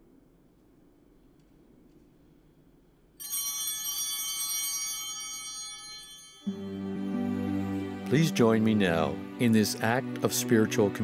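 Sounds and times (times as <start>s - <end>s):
bell chime ringing: 3.2s - 10.9s.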